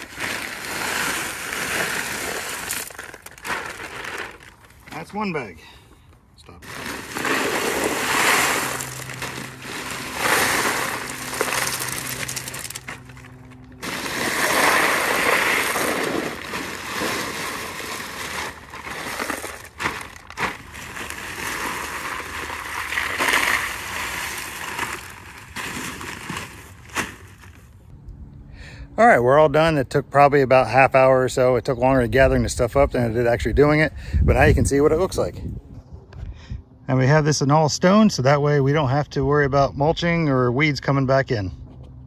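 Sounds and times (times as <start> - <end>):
stones poured from a bag: 0.0 - 5.0, 6.6 - 27.7.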